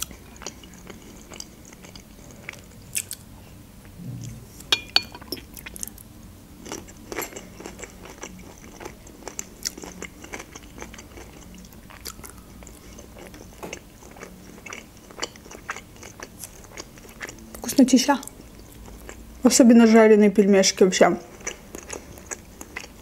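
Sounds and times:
chewing and biting dumplings: 0:00.0 - 0:03.3, 0:06.6 - 0:19.4, 0:21.2 - 0:23.0.

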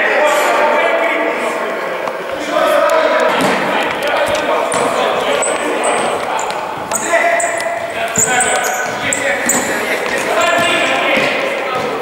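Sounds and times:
players' voices: 0:00.0 - 0:12.0
shoes squeaking on court floor: 0:03.2 - 0:12.0.

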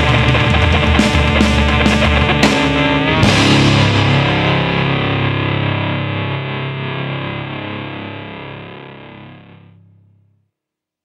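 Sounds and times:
distorted electric guitar chord ringing: 0:00.0 - 0:10.4.

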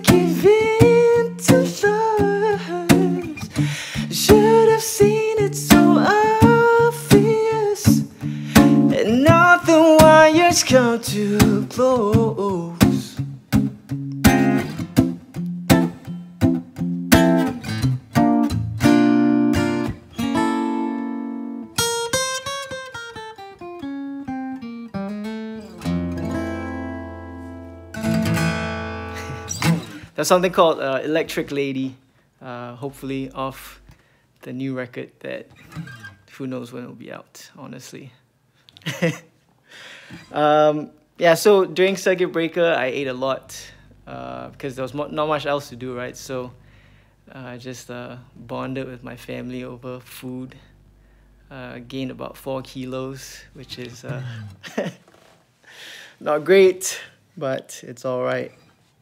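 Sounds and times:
man singing wordless melody: 0:00.0 - 0:13.3
acoustic guitar: 0:00.0 - 0:31.8, 0:35.3 - 0:36.4, 0:38.6 - 0:57.3.

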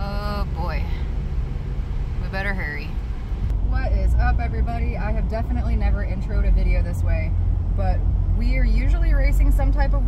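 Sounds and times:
car cabin low rumble: 0:00.0 - 0:10.0.

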